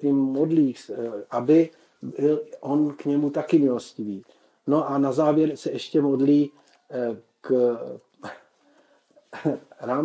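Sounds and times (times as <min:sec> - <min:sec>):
man speaking: 0:00.0 - 0:08.6, 0:09.2 - 0:10.0.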